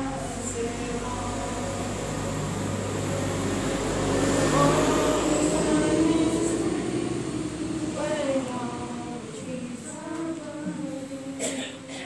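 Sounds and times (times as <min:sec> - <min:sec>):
group of voices singing: 0:00.0 - 0:12.0.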